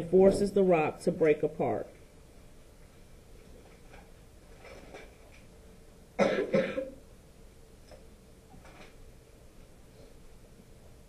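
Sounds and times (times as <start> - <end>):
person coughing: 6.2 - 7.0.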